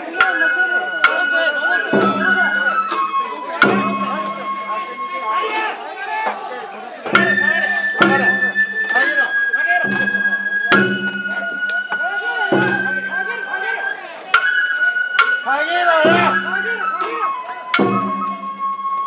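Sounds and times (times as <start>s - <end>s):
bamboo flute long high notes: 0.0s - 6.4s, 7.1s - 19.0s
drum strikes: 0.1s - 5.0s, 7.0s - 13.5s, 14.3s - 18.8s.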